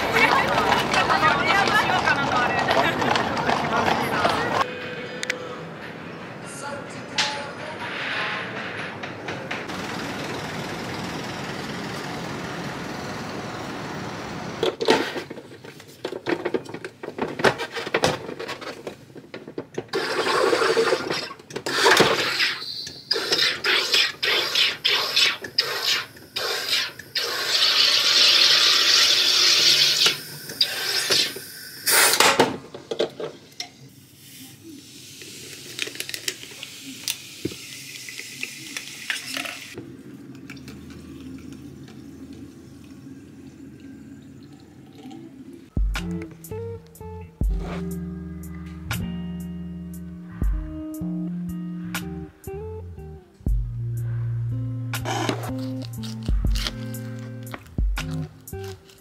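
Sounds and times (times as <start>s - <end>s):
soda maker hissing bursts: 21.7s - 32.2s
soft hiss from bottle: 34.1s - 38.8s
guitar music: 45.8s - 59.0s.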